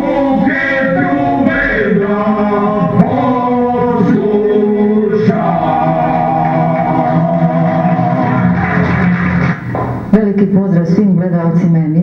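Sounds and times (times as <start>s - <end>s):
man singing through tv speaker: 0.0s - 8.8s.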